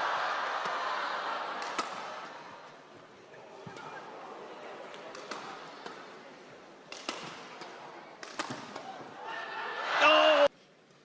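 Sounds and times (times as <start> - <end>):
hall background noise: 0.0 - 11.0
racket hitting shuttlecock: 1.6 - 2.4, 4.9 - 6.1, 6.9 - 9.0.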